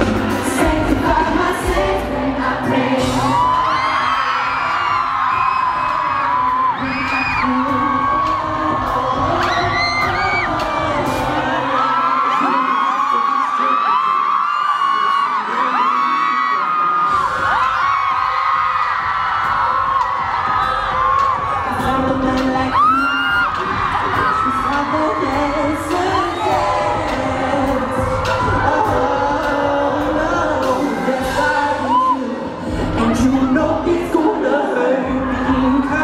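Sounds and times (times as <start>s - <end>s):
audience screaming and whooping: 0.0s - 36.0s
live synth-pop band music: 0.0s - 36.0s.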